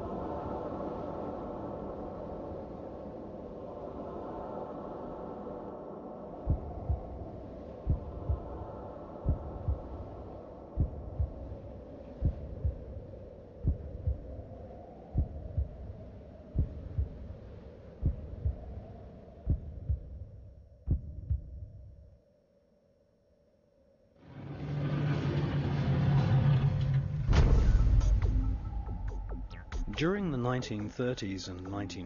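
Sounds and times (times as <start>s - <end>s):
low droning hum: 0.0s - 21.8s
heartbeat double thump: 6.5s - 7.1s, 7.9s - 8.5s, 9.3s - 9.9s, 10.8s - 11.4s, 12.2s - 12.9s, 13.6s - 14.3s, 15.2s - 15.8s, 16.6s - 17.2s, 18.0s - 18.7s, 19.5s - 20.3s, 20.9s - 21.8s.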